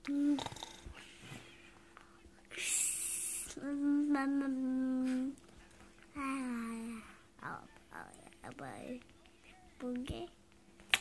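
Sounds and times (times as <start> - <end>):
long steady hum: 0.0 - 11.0.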